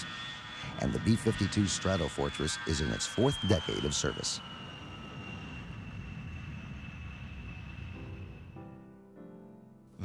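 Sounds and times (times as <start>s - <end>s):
high engine whine: 0.0s - 8.9s
jet engines rumbling: 0.0s - 9.5s.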